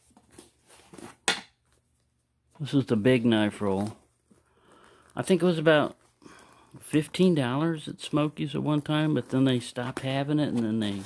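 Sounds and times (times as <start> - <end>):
leather strap handling rustle: 3.3 - 11.0.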